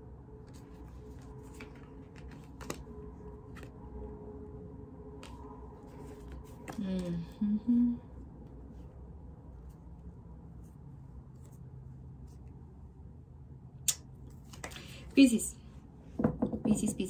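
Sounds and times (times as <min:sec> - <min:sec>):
faint low hum: 0:00.0 - 0:17.0
woman humming: 0:06.8 - 0:08.2.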